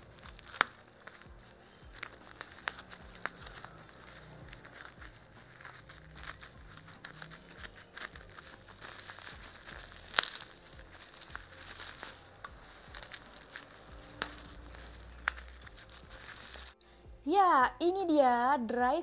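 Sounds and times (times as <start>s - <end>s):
plastic wrapping crinkling and tearing: 0.0s - 16.8s
scissors cutting plastic: 0.0s - 16.8s.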